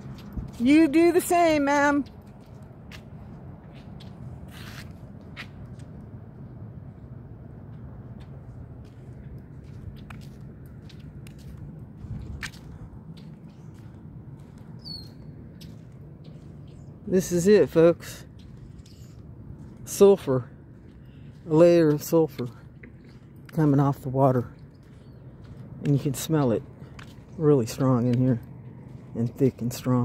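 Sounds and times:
footsteps on pavement: 0.0s - 30.0s.

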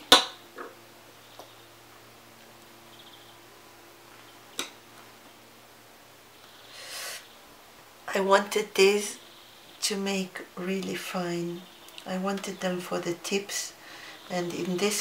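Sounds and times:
faint steady hum: 0.0s - 15.0s.

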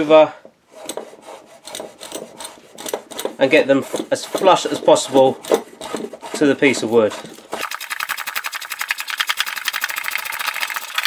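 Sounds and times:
block plane shaving wood: 0.7s - 7.6s.

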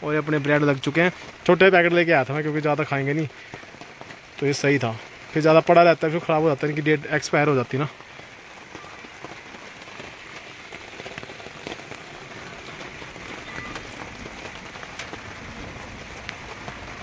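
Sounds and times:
rain pattering on a tarp: 0.0s - 17.0s.

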